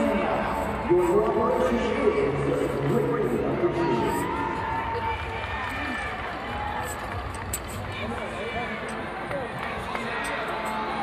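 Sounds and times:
crowd chatter echoing in hall: 0.0s - 11.0s.

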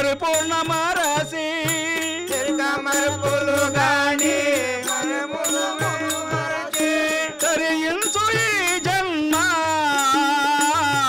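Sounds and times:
hand cymbals ringing: 0.0s - 11.0s
harmonium drone: 0.0s - 11.0s
man singing with vibrato: 0.0s - 11.0s.

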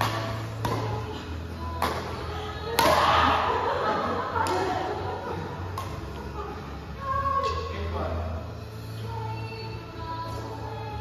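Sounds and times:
racket hitting shuttlecock: 0.0s - 1.1s, 1.8s - 3.4s.

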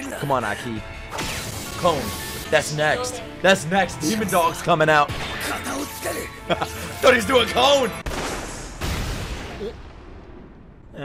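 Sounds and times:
explosive blasts: 8.0s - 11.0s.

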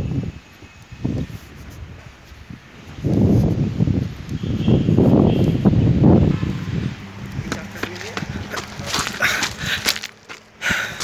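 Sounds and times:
footsteps crunching on pebbles: 7.3s - 11.0s.

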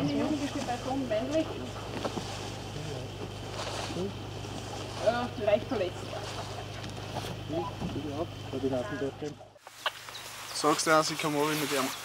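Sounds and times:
indistinct voices talking: 0.0s - 12.0s
steady low hum: 0.0s - 12.0s.

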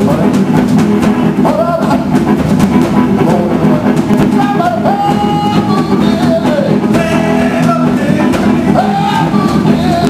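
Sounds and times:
electric guitar bending notes: 0.0s - 10.0s
live blues band playing: 0.0s - 10.0s.

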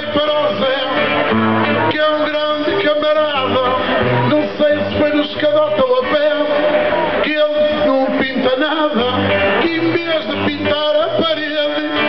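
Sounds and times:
acoustic guitar strumming: 0.0s - 12.0s
man singing: 0.0s - 12.0s.

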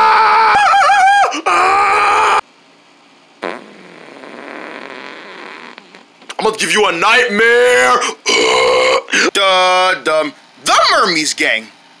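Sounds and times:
buzzy fart-like noise: 3.4s - 6.2s.

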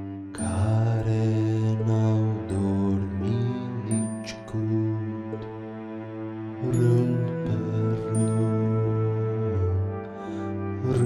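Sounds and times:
bowed cello low notes: 0.0s - 11.0s.

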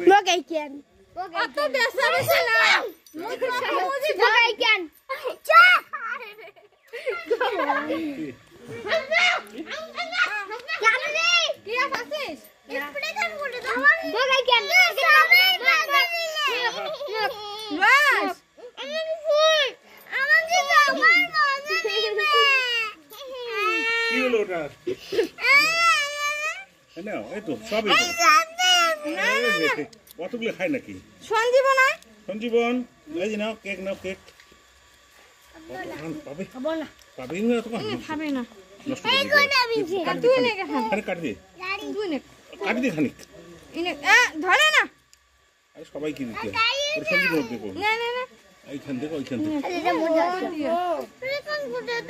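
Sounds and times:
children talking: 0.0s - 30.3s, 34.6s - 45.6s, 46.2s - 52.0s
small child's drawn-out voice: 18.6s - 23.9s.

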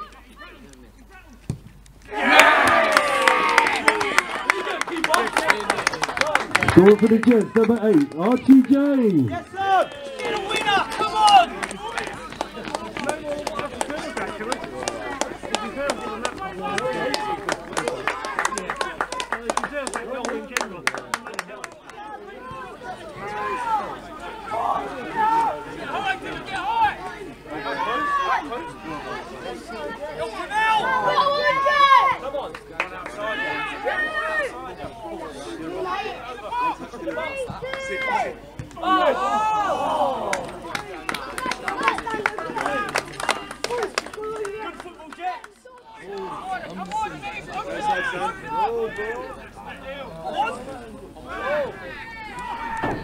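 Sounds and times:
crowd shouting and cheering: 2.0s - 53.0s
sharp claps: 2.4s - 9.4s.

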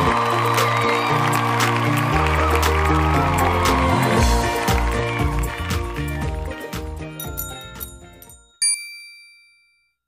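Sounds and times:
background music: 0.0s - 8.6s
bright bell-like ding: 7.2s - 10.0s.

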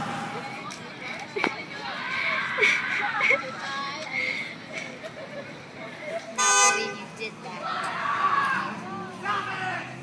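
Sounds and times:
car horn honking: 6.4s - 7.1s.

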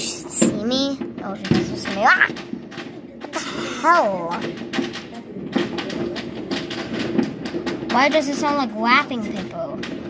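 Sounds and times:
sharp pops and clicks: 0.0s - 10.0s.

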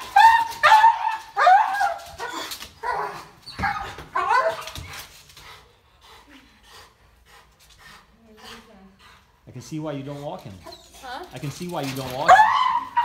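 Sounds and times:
dog yelping barks: 0.0s - 4.8s, 12.2s - 13.0s
dog whining: 0.0s - 5.1s, 10.6s - 11.3s, 12.2s - 13.0s.

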